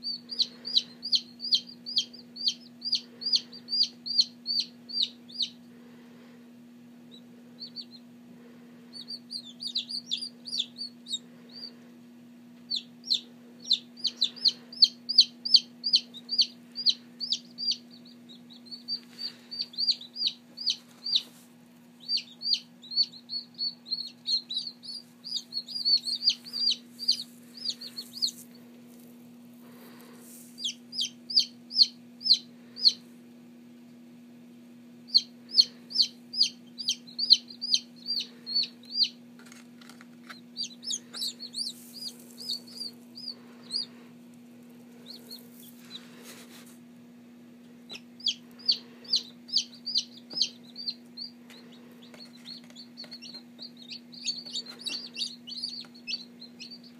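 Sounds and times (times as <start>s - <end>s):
chicks peeping: 0.0s - 6.3s, 7.0s - 12.0s, 12.6s - 33.1s, 35.0s - 46.8s, 47.6s - 56.9s
steady low hum: 0.0s - 56.9s.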